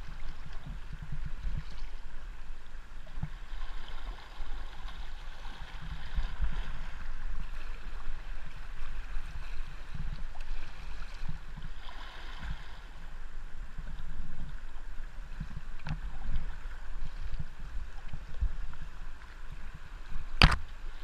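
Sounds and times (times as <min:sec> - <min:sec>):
paddle strokes splashing: 0:00.0 - 0:21.0
river water running over stones: 0:00.0 - 0:21.0.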